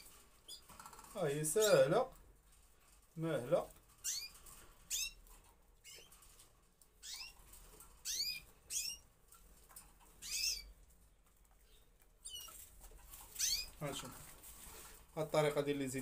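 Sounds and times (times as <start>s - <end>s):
canaries chirping: 0.0s - 16.0s.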